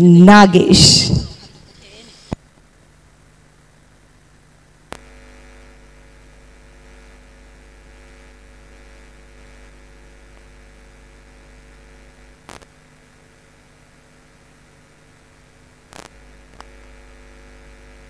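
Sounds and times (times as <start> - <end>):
electrical mains hum: 0.0 - 18.0.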